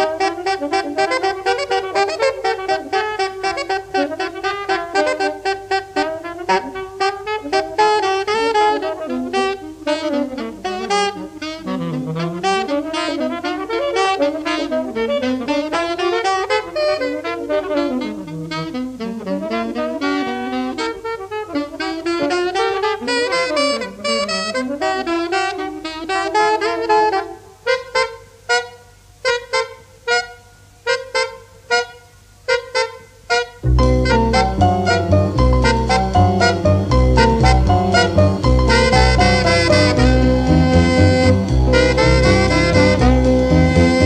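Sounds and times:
saxophone jazz solo: 0.0 - 44.0
small jazz group: 0.0 - 44.0.

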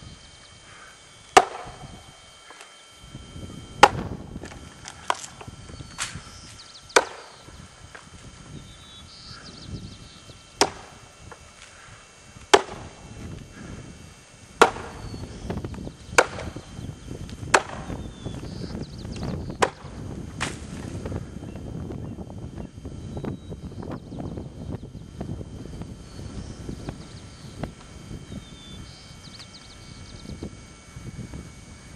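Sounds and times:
axe chopping into log: 1.3 - 1.8, 3.8 - 5.4, 7.0 - 7.3, 10.6 - 10.9, 12.5 - 12.9, 14.6 - 15.0, 16.2 - 16.6, 17.5 - 17.9, 19.6 - 20.8.

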